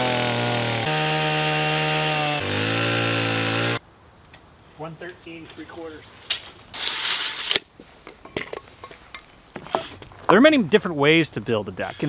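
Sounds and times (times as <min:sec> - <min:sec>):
tape measure retracting: 0:06.8 - 0:07.7.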